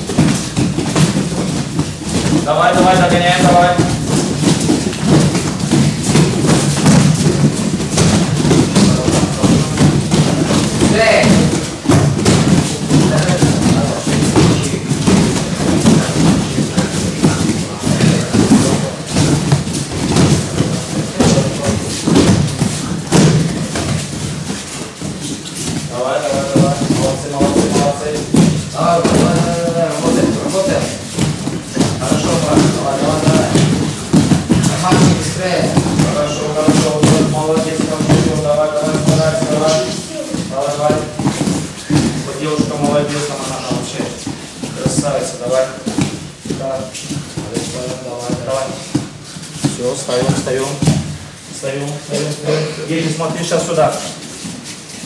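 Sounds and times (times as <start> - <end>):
bare feet thudding on mats: 0.0 - 55.0.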